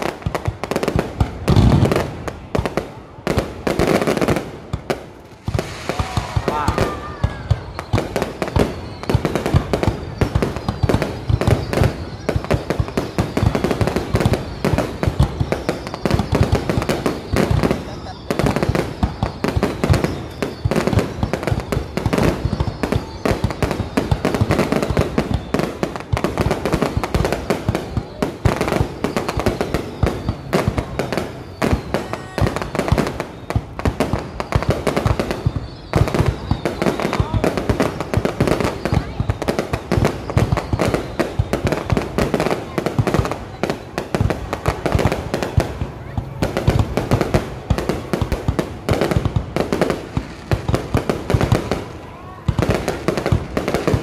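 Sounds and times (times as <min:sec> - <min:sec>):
fireworks bangs and crackles: 0:00.0 - 0:54.0.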